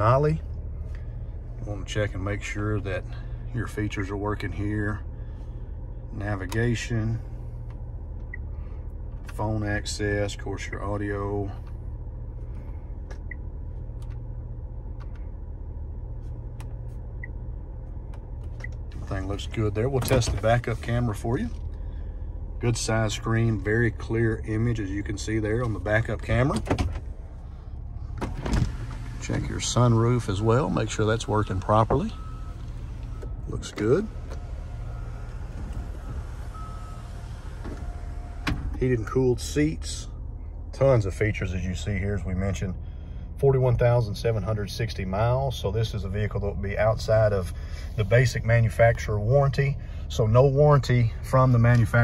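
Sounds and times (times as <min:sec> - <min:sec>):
car engine idling: 0:00.0 - 0:52.0.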